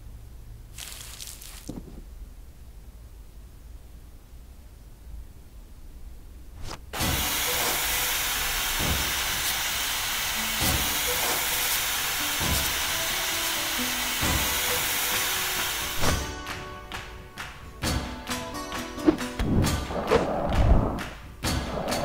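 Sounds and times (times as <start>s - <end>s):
loud hiss of rushing air: 6.6s - 16.3s
music with low thump: 7.0s - 8.0s, 8.8s - 9.4s, 10.4s - 13.2s, 13.8s - 22.0s.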